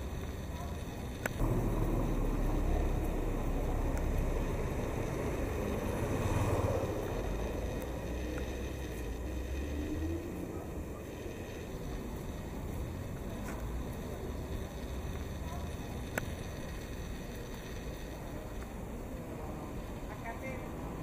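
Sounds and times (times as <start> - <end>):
low steady rumbling: 0.0 - 21.0.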